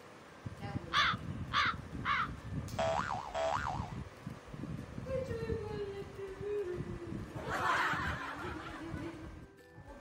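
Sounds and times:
crow cawing: 0:01.0 - 0:02.3
wobbling electronic tone: 0:02.8 - 0:04.0.

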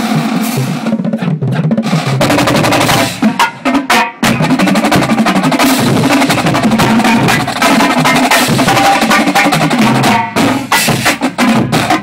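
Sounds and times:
bass drums: 0:00.0 - 0:12.0
snare drums: 0:00.0 - 0:12.0.

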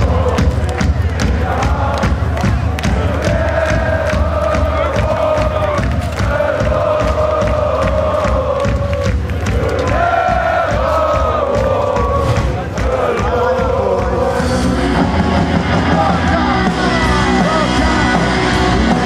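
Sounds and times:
crowd cheering: 0:00.0 - 0:19.0
crowd singing along: 0:00.0 - 0:19.0
punk band playing loudly: 0:00.0 - 0:19.0.

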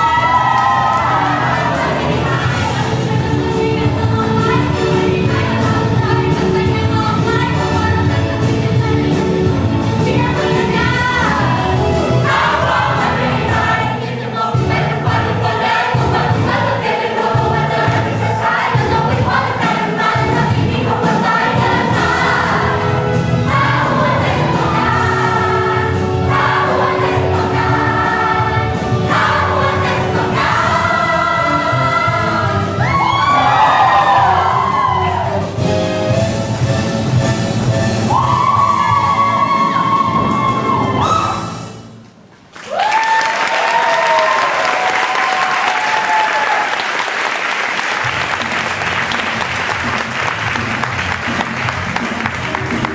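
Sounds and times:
cast singing ensemble number: 0:00.0 - 0:09.4, 0:10.0 - 0:35.6
musical accompaniment: 0:00.0 - 0:42.5, 0:47.4 - 0:52.9.

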